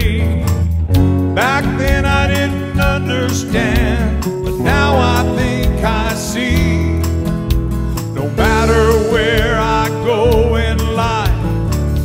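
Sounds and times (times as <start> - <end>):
man singing: 0.0 - 7.3, 8.1 - 12.0
acoustic guitar strumming: 0.0 - 12.0.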